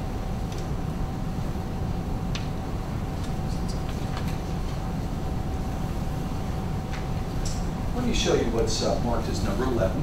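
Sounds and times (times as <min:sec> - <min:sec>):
faint steady hum: 0:00.0 - 0:10.0
low room rumble: 0:00.0 - 0:10.0.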